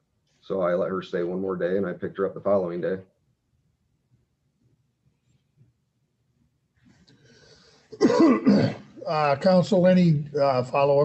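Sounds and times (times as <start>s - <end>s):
man clearing throat: 8.0s - 9.1s.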